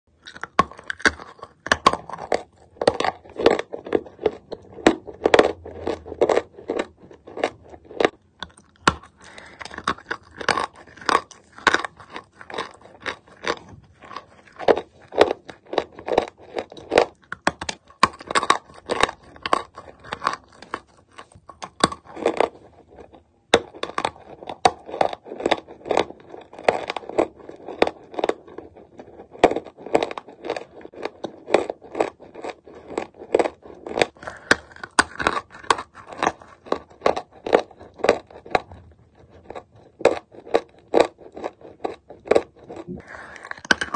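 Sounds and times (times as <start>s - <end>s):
chalk being chewed: 0.2s - 43.9s.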